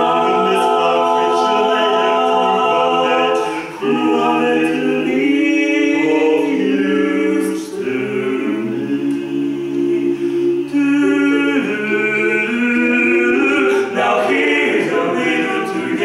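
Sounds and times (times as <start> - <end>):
male vocal quartet singing: 0.0 - 16.0.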